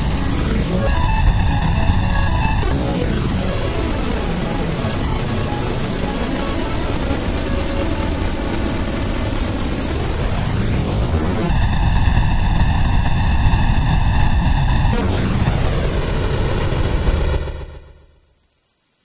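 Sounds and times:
harsh noisy synthesizer tone: 0.0 - 15.8.

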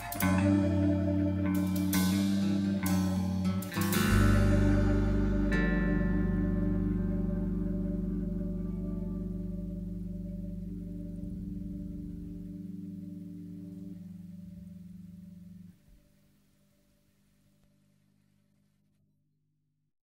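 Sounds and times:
guitar chord ringing out: 0.0 - 15.8.

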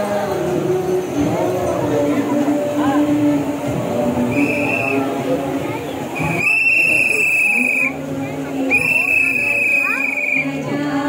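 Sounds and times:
loud background din: 0.0 - 11.0
short high whistle-like tone: 4.3 - 5.1, 6.2 - 8.0, 8.7 - 10.5.

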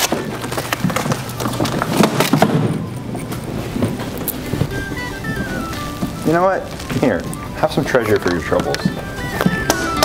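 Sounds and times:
chairs clicking and knocking: 0.0 - 10.0
background music: 1.8 - 10.0.

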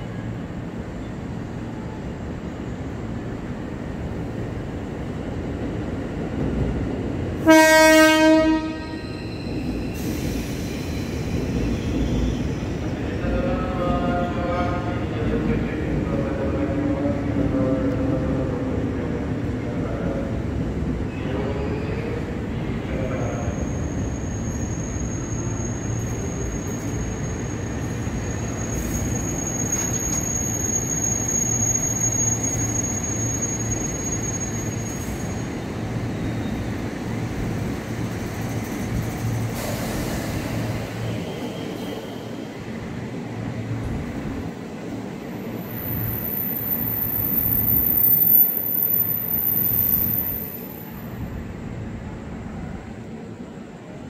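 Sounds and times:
train wheels rumbling on rails: 0.0 - 54.0
high squeal: 8.8 - 13.0, 23.0 - 36.7, 45.6 - 50.9.

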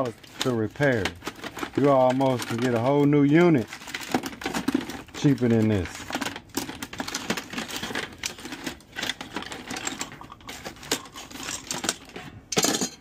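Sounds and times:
hand tools clattering in bucket: 4.0 - 13.0.

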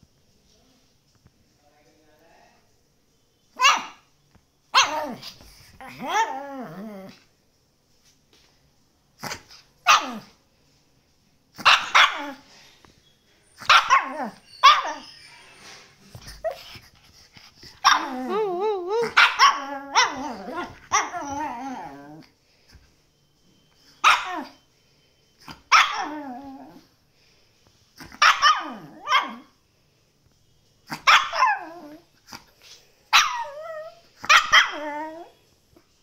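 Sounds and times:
small dog barking: 3.6 - 4.1, 4.7 - 6.3, 9.2 - 10.4, 11.6 - 12.4, 13.6 - 15.0, 17.8 - 18.4, 19.0 - 22.0, 24.0 - 24.6, 25.4 - 26.2, 28.0 - 29.5, 30.9 - 32.4, 33.1 - 35.3.

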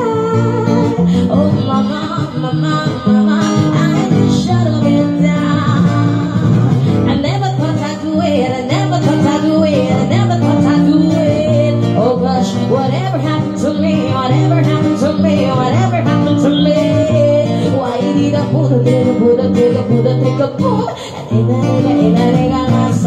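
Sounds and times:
acoustic guitar strumming: 0.0 - 23.0
woman singing: 0.0 - 23.0.

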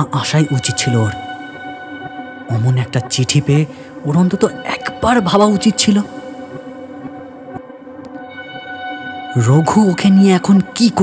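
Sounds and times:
man speaking: 0.0 - 1.3, 2.5 - 6.2, 9.4 - 11.0
background music drone: 0.0 - 11.0.

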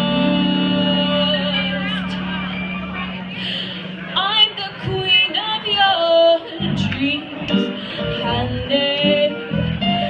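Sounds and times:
woman singing jazz: 0.0 - 2.2, 4.2 - 10.0
band holding low note: 0.0 - 4.2
club room noise: 0.0 - 10.0.

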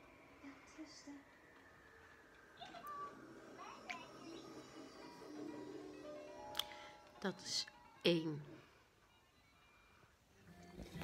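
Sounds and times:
television speech and music: 0.0 - 11.0.

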